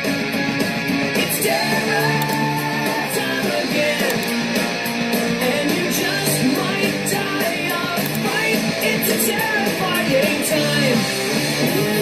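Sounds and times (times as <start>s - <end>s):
rock music with guitar: 0.0s - 12.0s.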